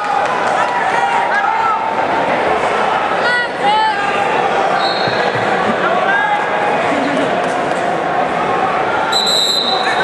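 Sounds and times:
spectators talking and shouting: 0.0 - 10.0.

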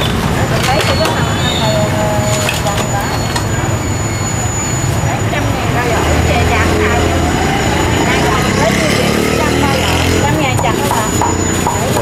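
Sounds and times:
indistinct chatter of voices: 0.0 - 12.0
traffic engine rumble: 0.0 - 12.0.

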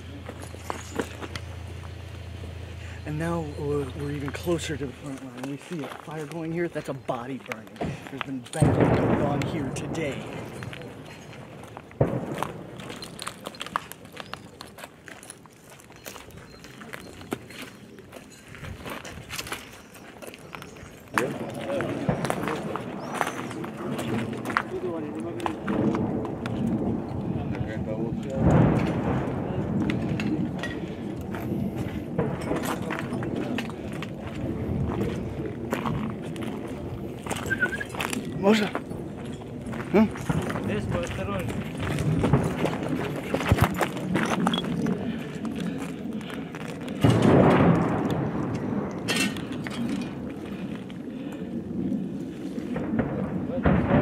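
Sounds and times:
voices talking: 0.0 - 14.7, 20.4 - 30.5, 32.7 - 46.5
sharp bang: 8.6 - 11.0.

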